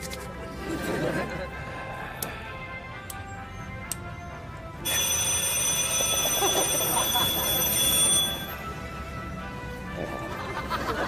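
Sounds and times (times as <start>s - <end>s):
alarm clock ringing: 4.8s - 8.7s.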